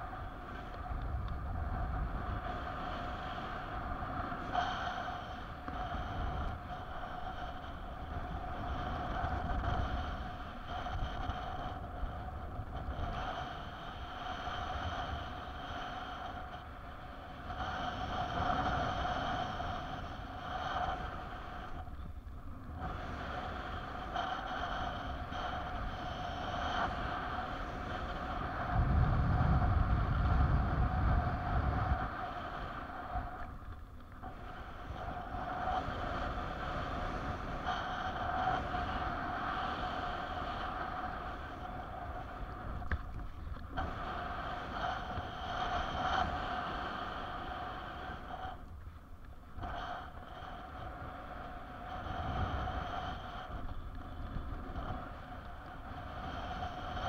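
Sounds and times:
wind buffeting microphone: 0.0 - 57.0
wind rushing over microphone: 0.0 - 57.0.

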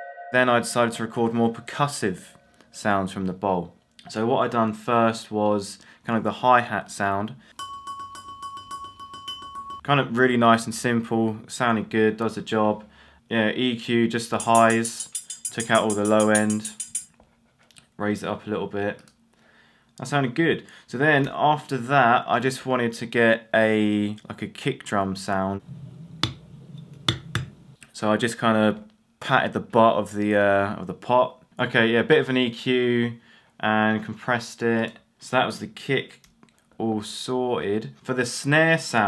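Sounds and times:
high ringing tone: 0.0 - 2.5, 7.6 - 9.8
ceramic pot tapped quickly: 14.4 - 17.1.

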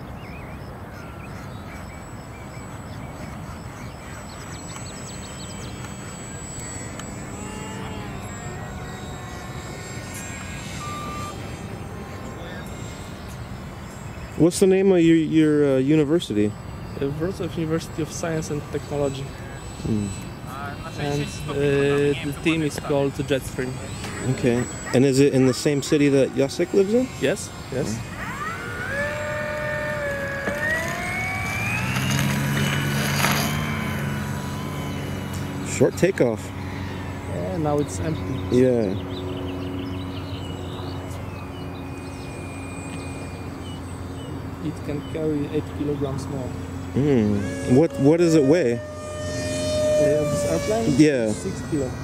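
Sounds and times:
low engine-like drone: 0.0 - 52.0
model plane motor whine: 0.0 - 52.0
short high tone: 2.0 - 32.3
faint voices: 2.0 - 33.0, 33.9 - 52.0.

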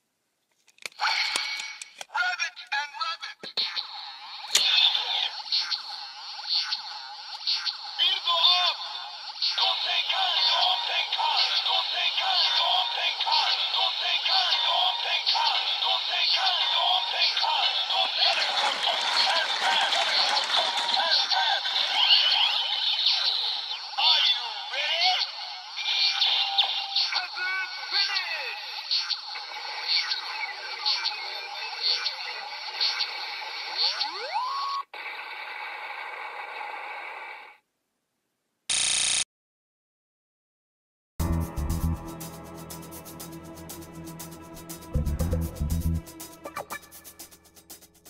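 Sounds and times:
toy lever cranking: 0.6 - 2.1, 18.2 - 22.3
recorded voice from toy: 1.0 - 34.9
toy speaker electronic music: 4.5 - 34.9, 44.9 - 47.2.

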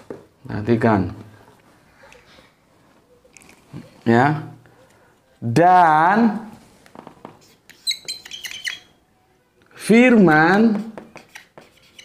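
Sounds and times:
marker squeaking on whiteboard: 6.8 - 9.1, 10.3 - 12.0
marker tapping on whiteboard: 10.5 - 12.0.

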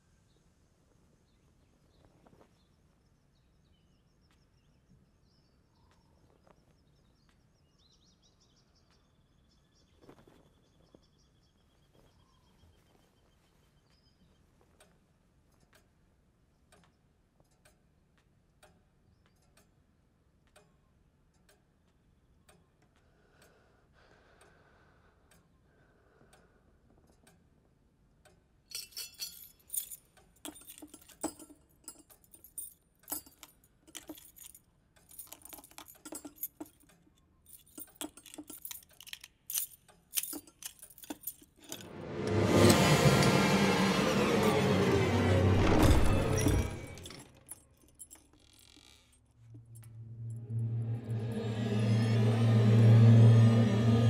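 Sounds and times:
keys dropped into a bowl: 28.7 - 36.9, 37.5 - 41.9
metal keys jangling: 28.7 - 41.9, 45.6 - 49.9
loud sound: 41.8 - 47.2, 49.8 - 54.0.

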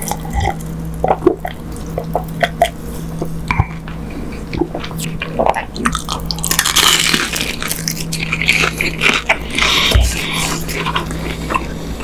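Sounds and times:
crunching of fried food: 3.8 - 11.8.

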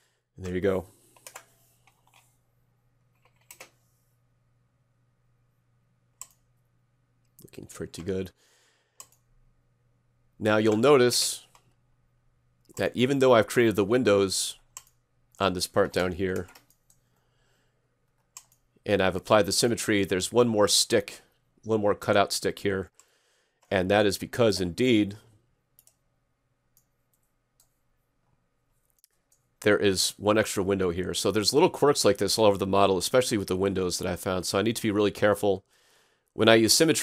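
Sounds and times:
faint steady low hum: 0.0 - 37.0
computer keys clicking: 1.2 - 2.3, 3.1 - 3.8, 6.2 - 6.4, 9.0 - 9.2, 14.7 - 15.0, 15.9 - 17.0, 18.2 - 18.6.

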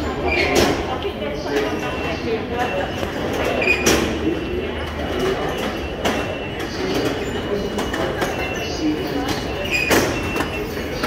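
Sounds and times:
murmur of voices: 0.0 - 11.0
ticket barrier gates clacking: 0.0 - 11.0.

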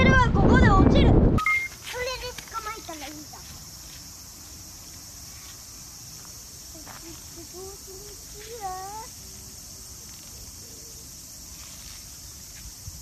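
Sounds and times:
insects droning: 0.0 - 13.0
child's sing-song vocal sounds: 6.7 - 9.2.

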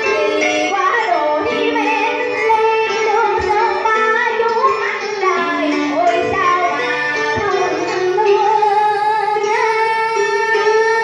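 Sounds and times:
instrumental accompaniment: 0.0 - 11.0
woman singing into a microphone: 0.0 - 11.0.

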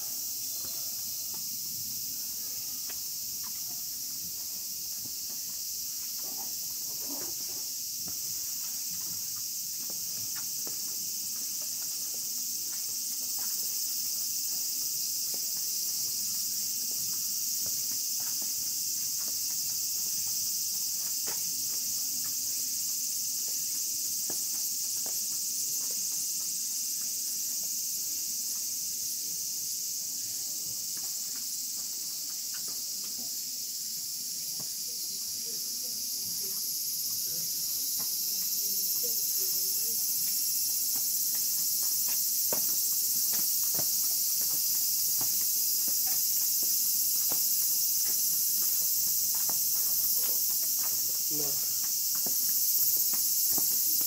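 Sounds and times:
insects droning: 0.0 - 54.0
footsteps on stone: 2.8 - 28.0, 30.8 - 33.2, 37.8 - 54.0.

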